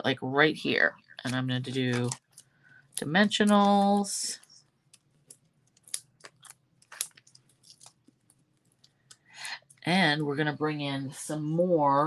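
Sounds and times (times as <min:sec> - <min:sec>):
cardstock crinkling and clicking: 0:04.9 - 0:09.2.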